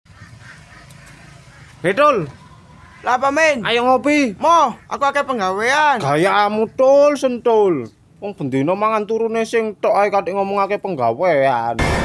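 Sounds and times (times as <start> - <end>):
faint outdoor background: 0.1 - 12.0.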